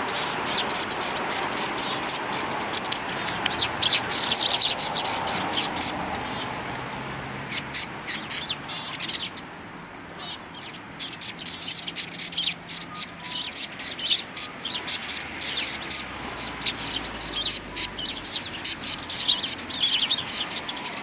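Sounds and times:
sparrows chirping: 0.0s - 6.8s, 7.4s - 21.0s.

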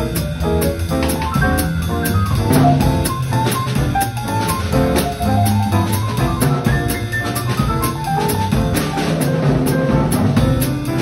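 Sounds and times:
drum kit: 0.0s - 11.0s
grand piano: 0.0s - 11.0s
upright double bass: 0.0s - 11.0s.

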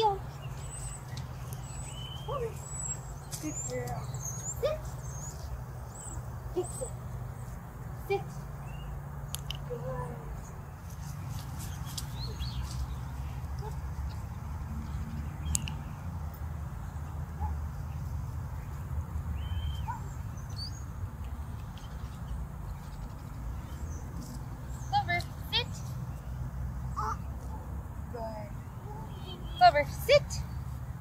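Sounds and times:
light clicks: 9.3s - 9.7s.

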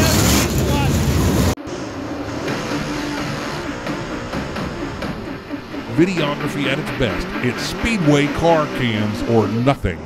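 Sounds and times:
race car engines running loud: 0.0s - 10.0s
wavering engine revs: 0.0s - 10.0s
music: 1.6s - 10.0s.

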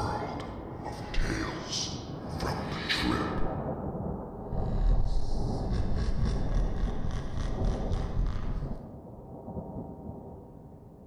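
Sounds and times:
thunder rumble: 3.8s - 10.7s.

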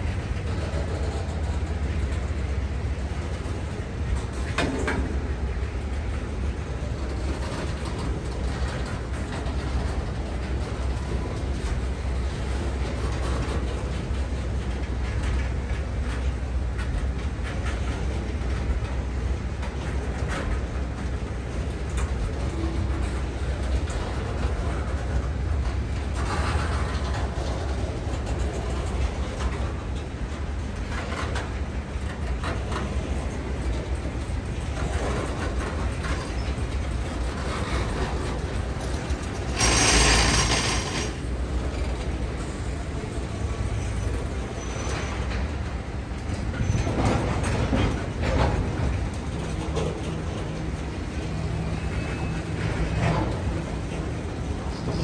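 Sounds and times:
freight cars rolling on rails: 0.0s - 55.0s.

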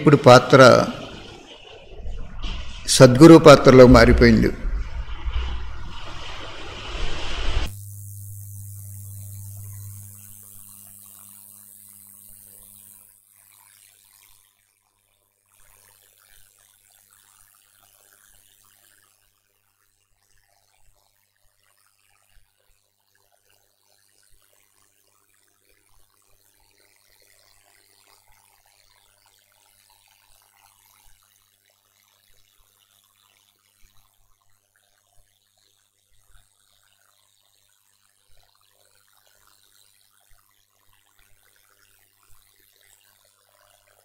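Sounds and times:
low steady hum: 0.0s - 12.9s
faint hiss: 2.5s - 12.9s.

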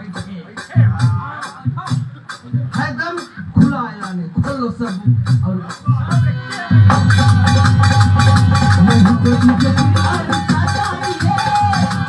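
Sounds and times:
hand drums quick rhythm: 6.1s - 12.0s.

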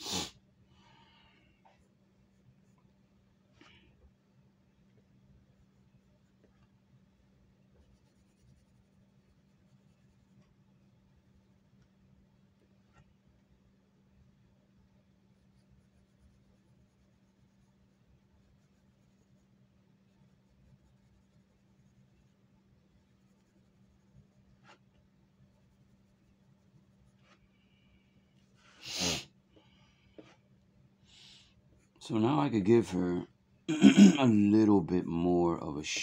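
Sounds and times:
low steady hum: 0.4s - 28.7s
pencil scratching on paper: 7.8s - 10.6s, 15.4s - 22.4s, 23.0s - 27.4s.

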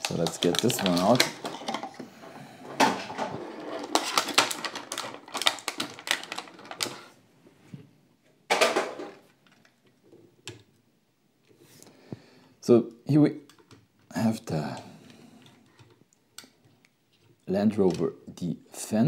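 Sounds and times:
packaging rustle: 0.0s - 2.0s, 2.8s - 7.2s
plastic and cardboard crinkling: 0.0s - 7.2s.

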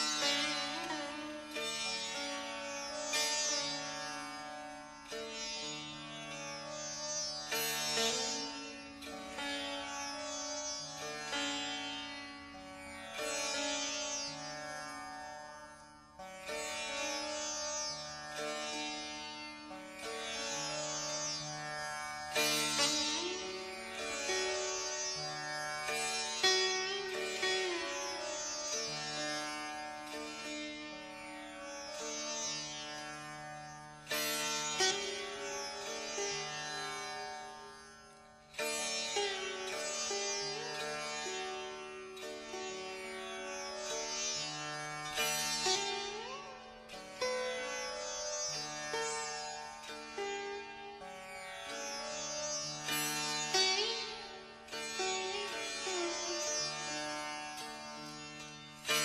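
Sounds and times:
sitar melody: 0.0s - 59.0s.

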